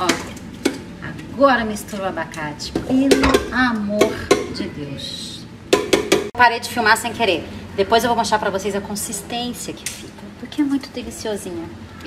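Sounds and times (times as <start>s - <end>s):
knocks against bowl: 5.7s - 6.3s.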